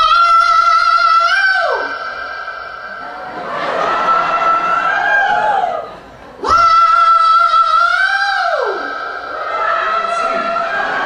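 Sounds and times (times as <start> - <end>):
man singing: 0.0 - 2.4, 6.4 - 11.0.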